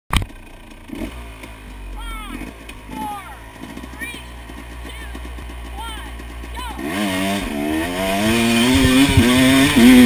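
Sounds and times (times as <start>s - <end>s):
dirt bike engine idling: 0.1s - 10.0s.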